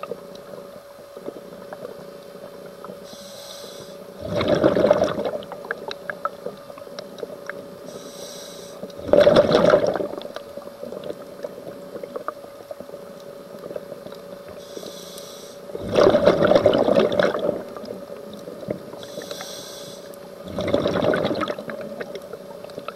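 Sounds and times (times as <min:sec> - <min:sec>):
steady hum: 0:00.0 - 0:22.9
regulator inhalation hiss: 0:03.0 - 0:04.2, 0:07.8 - 0:08.9, 0:14.6 - 0:15.8, 0:18.9 - 0:20.2
exhaled bubbles rushing: 0:04.2 - 0:05.9, 0:09.0 - 0:10.3, 0:15.8 - 0:17.9, 0:20.4 - 0:22.9.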